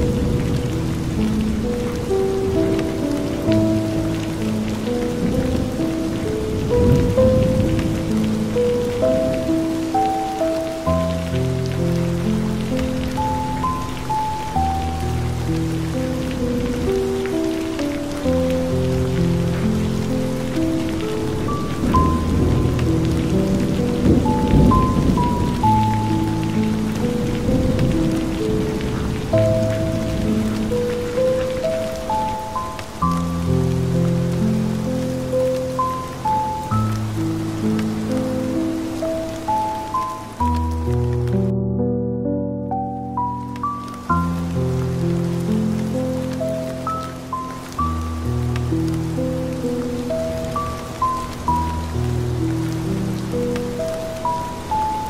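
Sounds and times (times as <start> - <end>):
rain falling on hard surface: 0.0 - 41.5, 42.6 - 55.0
slow relaxation music: 0.0 - 55.0.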